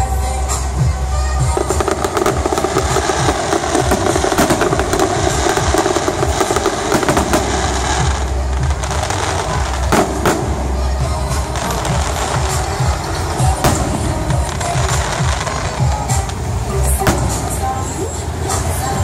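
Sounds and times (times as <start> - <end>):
fireworks popping and crackling: 0.0 - 19.0
music: 0.0 - 19.0.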